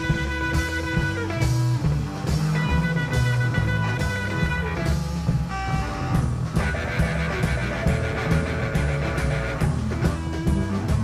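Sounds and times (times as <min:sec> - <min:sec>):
blues-rock band playing: 0:00.0 - 0:11.0
electric guitar lead: 0:00.0 - 0:11.0.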